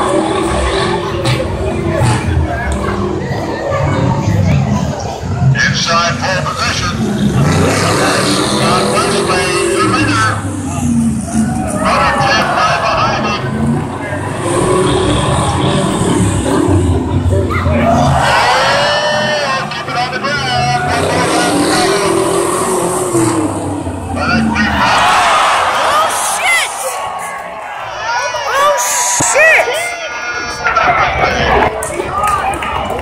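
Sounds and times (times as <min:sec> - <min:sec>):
crowd voices: 0:00.0 - 0:33.0
truck engines racing: 0:00.0 - 0:33.0.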